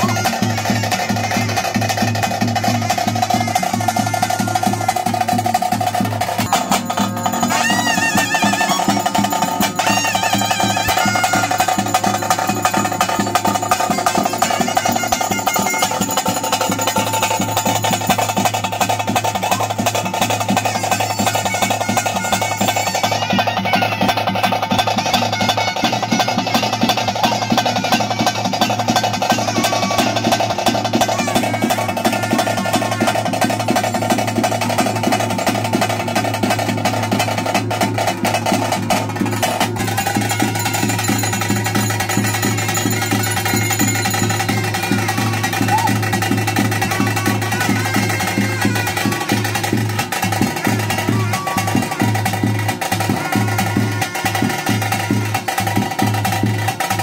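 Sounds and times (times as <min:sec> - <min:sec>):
drum roll with sticks: 0:00.0 - 0:57.0.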